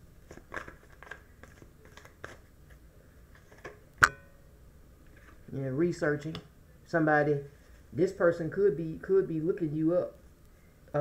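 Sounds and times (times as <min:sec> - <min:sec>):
cards shuffling: 0:00.2 - 0:02.8.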